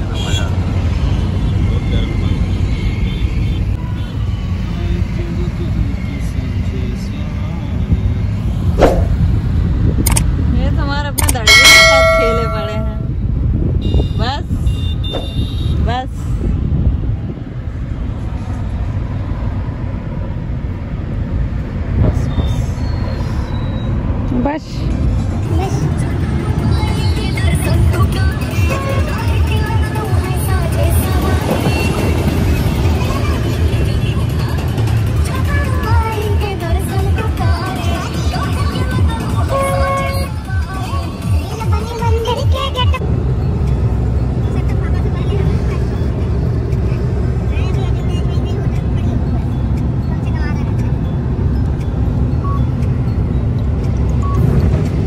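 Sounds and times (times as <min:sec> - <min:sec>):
car road and engine noise: 0:00.0 - 0:55.0
loud pitched tone: 0:11.5 - 0:13.1.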